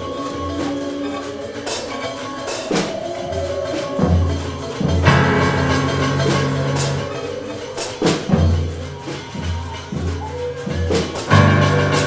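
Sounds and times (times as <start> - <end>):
hand percussion: 0.0 - 12.0
sharp percussion hits: 0.0 - 12.0.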